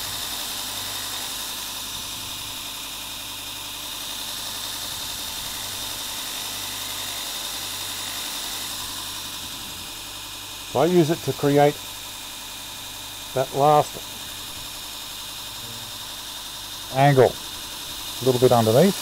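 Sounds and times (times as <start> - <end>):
electric motor humming with whine: 0.0 - 19.0.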